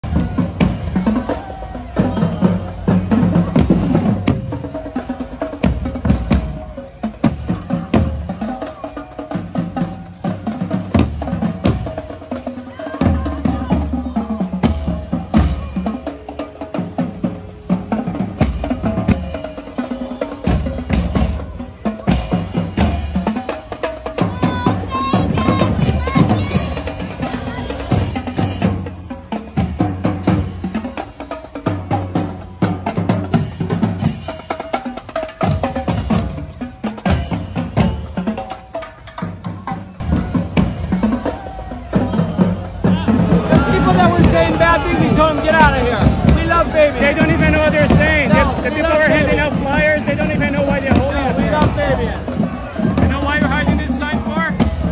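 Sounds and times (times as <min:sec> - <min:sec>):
bass drums: 0:00.0 - 0:38.7, 0:39.3 - 0:54.9
cymbals: 0:00.0 - 0:54.9
snare drums: 0:00.0 - 0:54.9.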